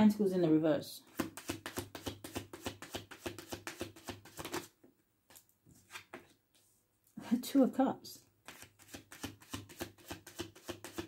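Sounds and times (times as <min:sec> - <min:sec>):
cards being shuffled: 0:01.1 - 0:06.6, 0:08.4 - 0:11.0.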